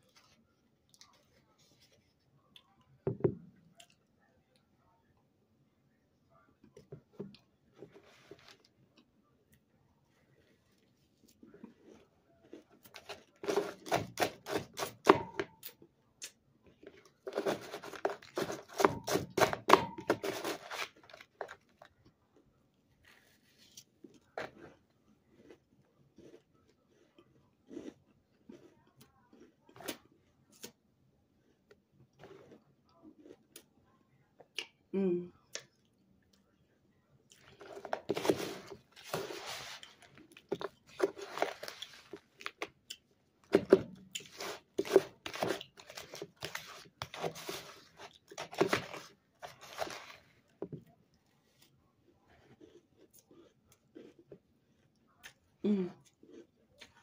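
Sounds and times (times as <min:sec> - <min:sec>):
chewing and crunching: 0:06.8 - 0:34.8, 0:37.2 - 0:57.0
plastic spoon scraping tub: 0:13.0 - 0:15.4, 0:17.2 - 0:21.2, 0:37.6 - 0:42.2, 0:43.6 - 0:50.2.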